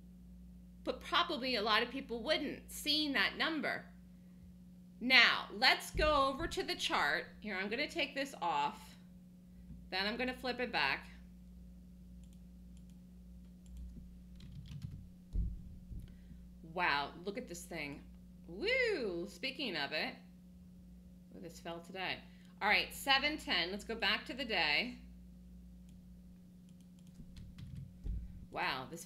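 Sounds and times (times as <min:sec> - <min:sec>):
steady low hum: 0:00.0 - 0:29.0
heavy low thump: 0:05.9 - 0:06.8, 0:15.3 - 0:16.2, 0:28.0 - 0:28.5
keyboard typing clicks: 0:12.2 - 0:15.0, 0:26.7 - 0:27.9.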